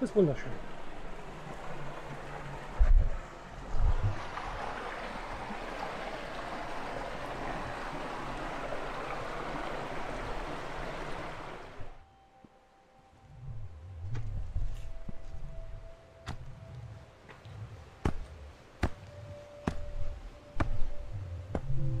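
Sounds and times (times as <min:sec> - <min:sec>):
stream running over rocks: 0:00.0 - 0:12.0.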